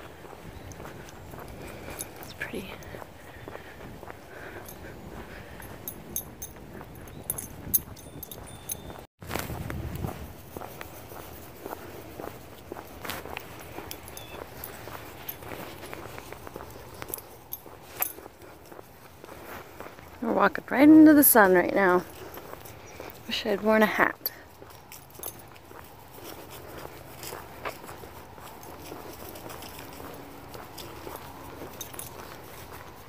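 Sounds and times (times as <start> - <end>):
footsteps on asphalt: 0.0 - 33.0.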